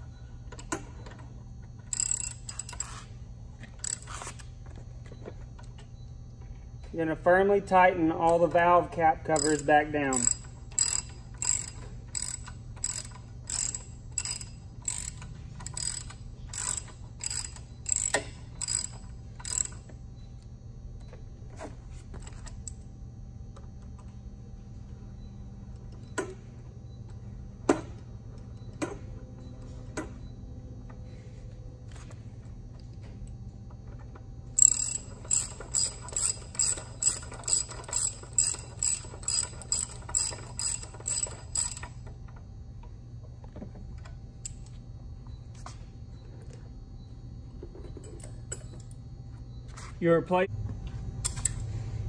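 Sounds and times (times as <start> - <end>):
ratchet wrench clicking: 1.9 - 3.1, 3.8 - 4.2, 9.3 - 19.9, 34.6 - 42.0.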